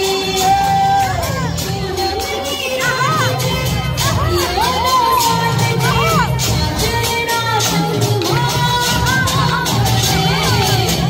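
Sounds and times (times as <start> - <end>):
crowd shouting and cheering: 0.0 - 11.0
folk dance music with steady beat: 0.0 - 11.0.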